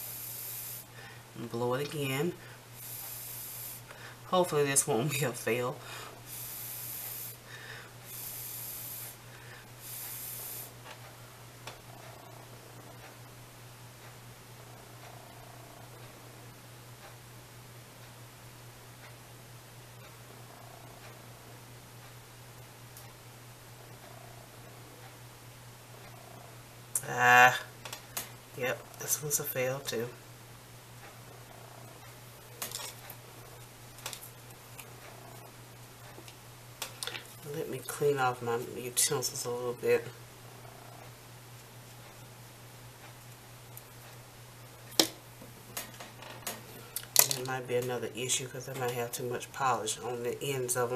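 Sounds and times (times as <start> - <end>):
low electrical hum: 0.0 - 50.9
puffs of breath: 5.8 - 10.7
small tools clicking and rustling: 32.6 - 33.1, 45.8 - 47.5.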